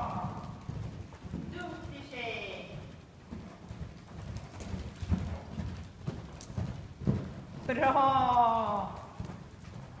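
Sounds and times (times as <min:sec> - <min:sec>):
horse hoofbeats on sand: 0:00.0 - 0:10.0.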